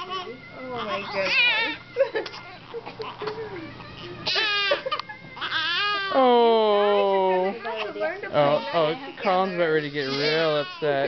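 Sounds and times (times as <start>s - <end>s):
infants crying: 0.0s - 11.0s.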